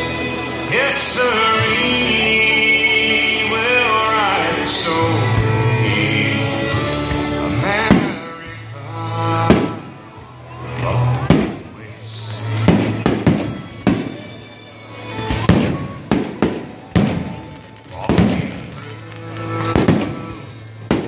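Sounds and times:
music playing: 0.0 - 21.0
fireworks bangs: 7.7 - 8.7, 9.4 - 10.2, 10.9 - 21.0.

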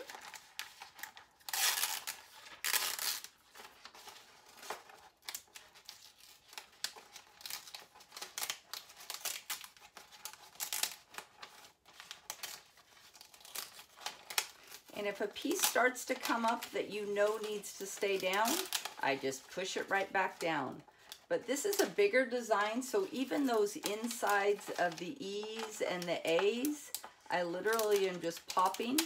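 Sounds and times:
ink sheet cracking and crinkling: 0.0 - 29.0.

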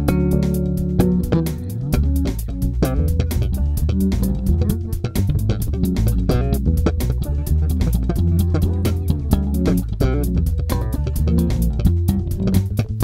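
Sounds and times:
electric bass playing: 0.0 - 13.0.

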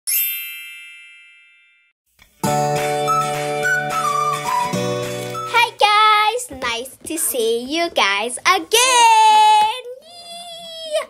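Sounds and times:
bell-like ding: 0.1 - 2.0.

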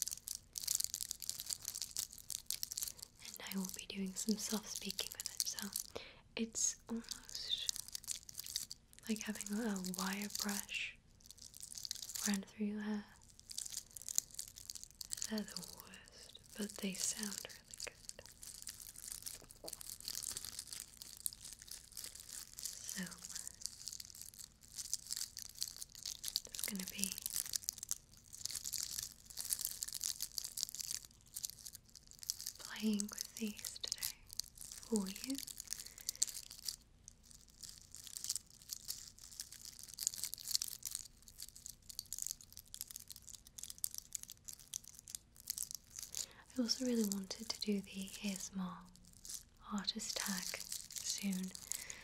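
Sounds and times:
nails scratching glittery egg: 0.0 - 5.8, 6.8 - 42.6, 45.2 - 52.0
soft mouth sounds: 13.1 - 27.8, 45.5 - 52.0.

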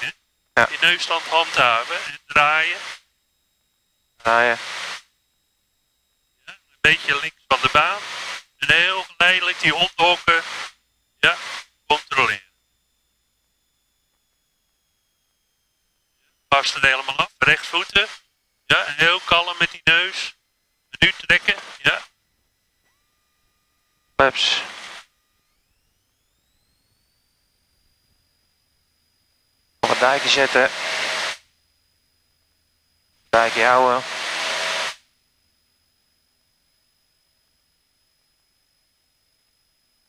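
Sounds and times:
open intercom microphone hiss: 0.0 - 3.1, 4.2 - 5.1, 6.5 - 12.5, 16.5 - 20.4, 21.0 - 22.2, 24.2 - 25.1, 29.8 - 31.4, 33.3 - 35.0.

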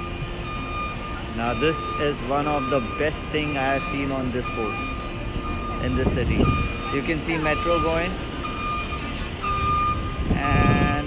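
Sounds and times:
low rumble of traffic: 0.0 - 11.0
music in held notes: 0.0 - 11.0.

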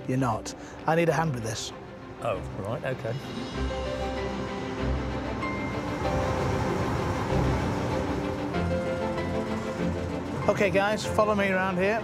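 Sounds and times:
background music: 0.0 - 12.0
diesel locomotive running: 3.4 - 12.0.

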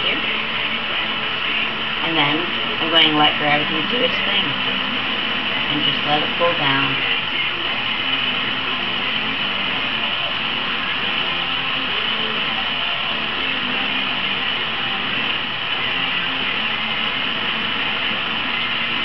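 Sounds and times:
torch flame hissing: 0.0 - 19.0.

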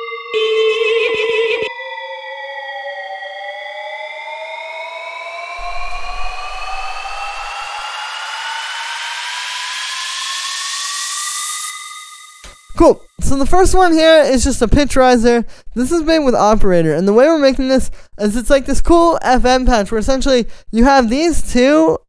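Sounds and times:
synth pitch riser: 0.0 - 13.1
filtered white-noise riser: 2.5 - 12.7.

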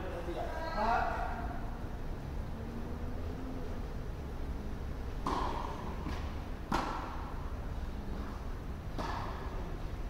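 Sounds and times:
low steady rumble: 0.0 - 10.0
racket hitting tennis ball: 5.2 - 7.3, 8.9 - 9.6.

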